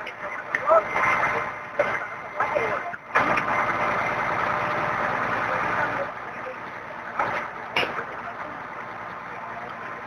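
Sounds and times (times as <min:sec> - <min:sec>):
fire truck engine running: 0:00.0 - 0:10.0.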